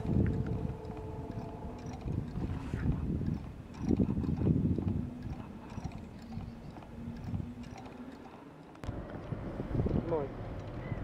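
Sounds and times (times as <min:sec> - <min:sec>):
magnet motor clicking: 0:00.0 - 0:08.9
steady low hum: 0:00.0 - 0:11.0.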